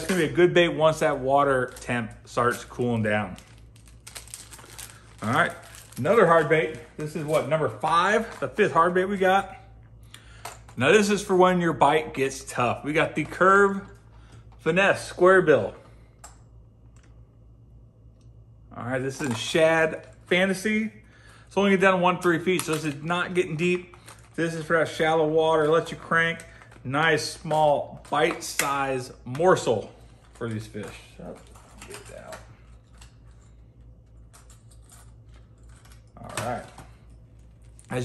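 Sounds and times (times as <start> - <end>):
low room hum: 0.0 - 38.0
packaging clicks and rattles: 2.5 - 6.2.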